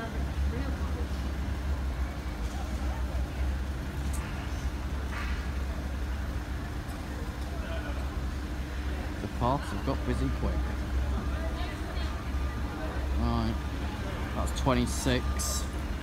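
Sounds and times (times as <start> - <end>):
engines idling: 0.0 - 16.0
faint voices: 0.0 - 16.0
street background noise: 0.0 - 16.0.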